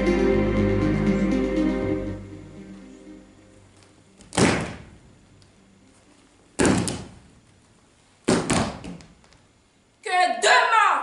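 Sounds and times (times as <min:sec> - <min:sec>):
feet stomping on stage floor: 0:04.2 - 0:05.0, 0:06.6 - 0:07.3, 0:08.2 - 0:09.4.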